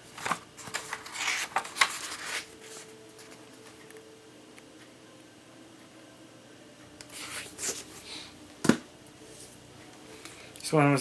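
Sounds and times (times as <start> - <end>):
paper rustling: 0.1 - 3.4.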